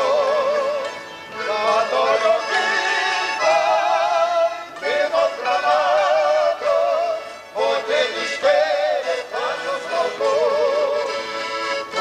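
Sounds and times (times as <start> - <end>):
band melody with vibrato: 0.0 - 12.0.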